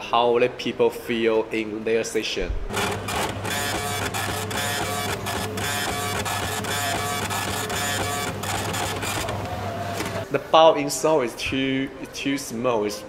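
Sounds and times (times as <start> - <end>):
ticket printer clatter: 2.7 - 10.3.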